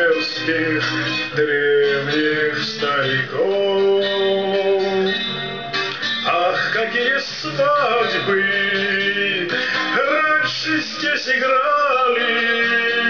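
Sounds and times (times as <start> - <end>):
man singing: 0.0 - 13.0
strummed acoustic guitar: 0.0 - 13.0.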